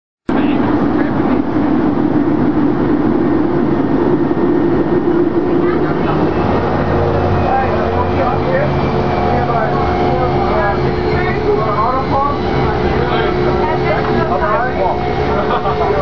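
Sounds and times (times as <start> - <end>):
aircraft cabin engine and airflow noise: 0.3 - 16.0
faint voices: 4.6 - 16.0.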